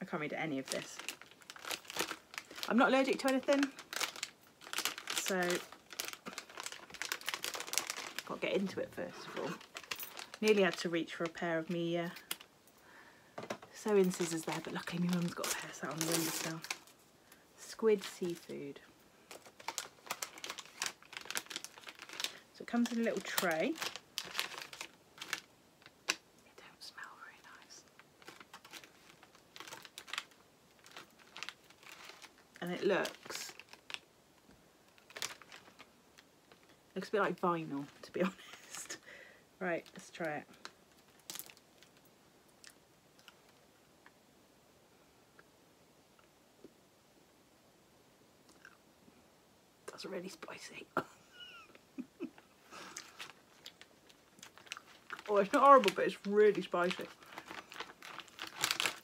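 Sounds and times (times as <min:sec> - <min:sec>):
plastic packaging crinkling: 0:00.0 - 0:12.5, 0:13.4 - 0:26.3, 0:27.0 - 0:34.1, 0:34.8 - 0:42.0, 0:51.3 - 0:59.0.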